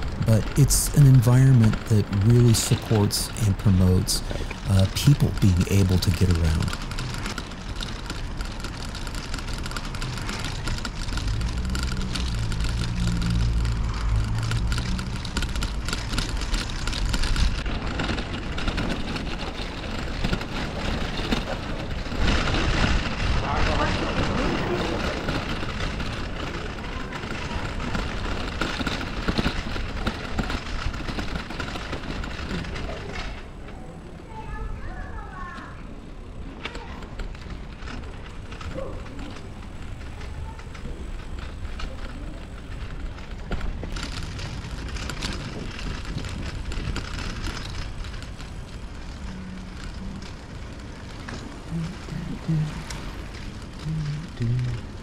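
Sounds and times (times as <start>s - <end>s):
passers-by voices: 0.0s - 7.6s, 17.4s - 47.8s, 48.6s - 55.0s
car engine rumbling: 0.0s - 32.8s, 38.2s - 55.0s
bicycle rolling over brick paving: 0.0s - 55.0s.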